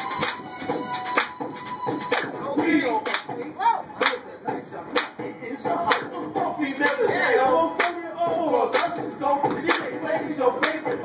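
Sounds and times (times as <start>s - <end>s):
hands clapping: 0.1s - 4.3s, 4.9s - 5.2s, 5.9s - 6.1s, 7.8s - 8.0s, 8.7s - 10.0s, 10.6s - 11.0s.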